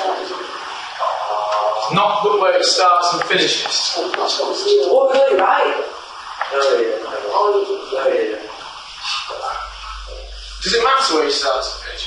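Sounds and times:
person talking: 0:00.0 - 0:12.0
room noise hiss: 0:00.0 - 0:12.0.

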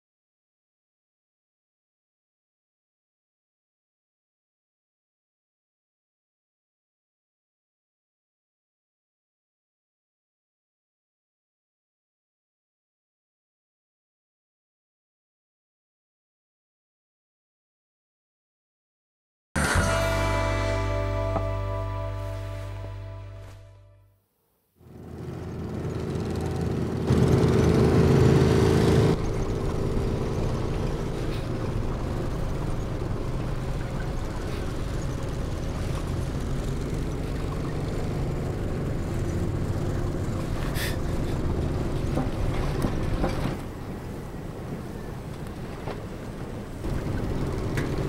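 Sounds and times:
vehicle engine running: 0:19.6 - 0:23.9, 0:24.8 - 0:48.0.

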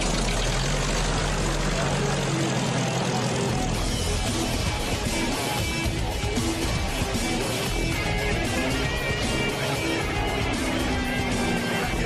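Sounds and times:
vehicle engine rumble: 0:00.0 - 0:12.0
soundtrack music: 0:00.6 - 0:12.0.

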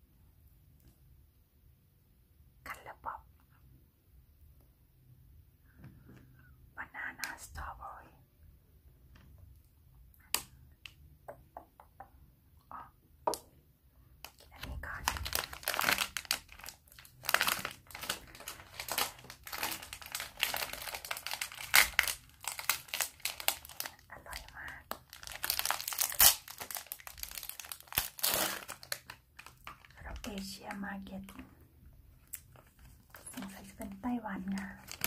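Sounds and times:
plastic wrapper crinkling and tearing: 0:14.2 - 0:31.4, 0:32.2 - 0:35.0.

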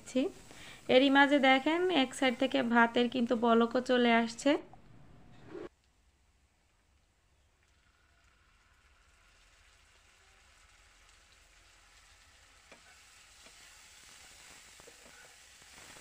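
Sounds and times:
onions sizzling in a frying pan: 0:00.0 - 0:03.8, 0:07.9 - 0:16.0.

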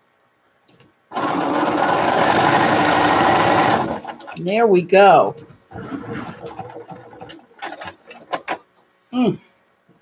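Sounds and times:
electric sewing machine running: 0:01.1 - 0:04.4, 0:05.7 - 0:08.6.

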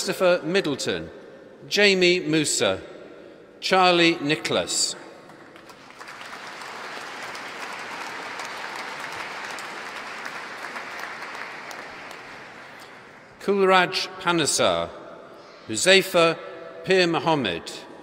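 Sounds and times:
audience applauding: 0:05.6 - 0:13.1.

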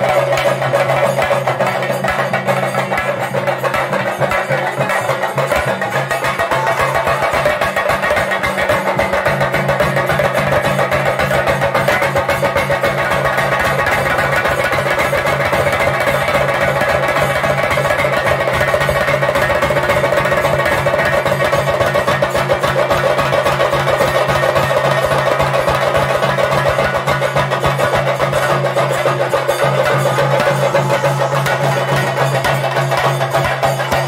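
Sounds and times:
fast drumming with sticks: 0:00.0 - 0:34.0.

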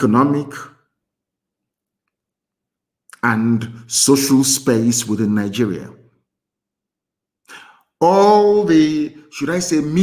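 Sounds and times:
man speaking: 0:00.0 - 0:00.8, 0:03.1 - 0:06.0, 0:07.6 - 0:10.0
man breathing in: 0:07.4 - 0:08.0.

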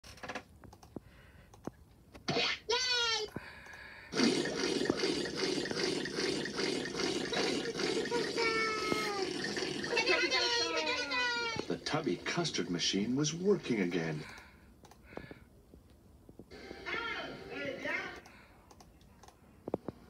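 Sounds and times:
liquid pouring sound effect: 0:04.2 - 0:10.7
high sliding character voices: 0:06.9 - 0:12.0.

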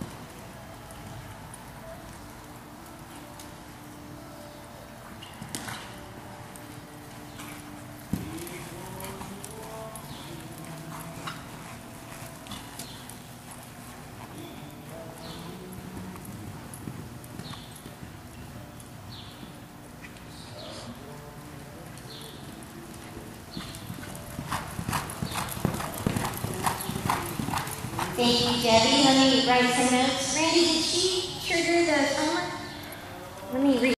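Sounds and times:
horse hoofbeats on dirt: 0:00.0 - 0:20.4, 0:21.0 - 0:30.4.

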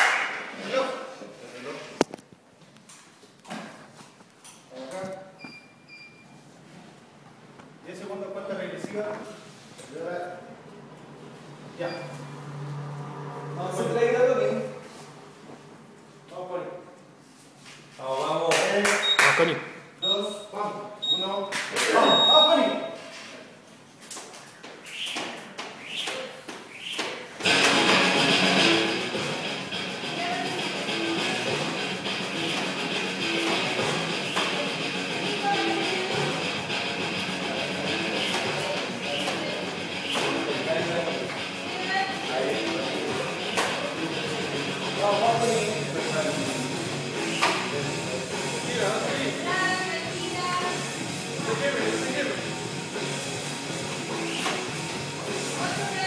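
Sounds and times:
faint voices in a gym: 0:00.0 - 0:02.2, 0:03.0 - 0:56.0
timer beeps: 0:19.0 - 0:19.3, 0:20.0 - 0:23.0
rock music with guitar: 0:27.4 - 0:41.7.

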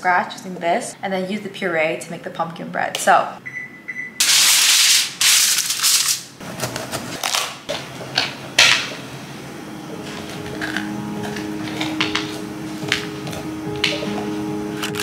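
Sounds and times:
aluminium foil crinkling: 0:04.6 - 0:06.3
soft background music: 0:09.4 - 0:15.0.

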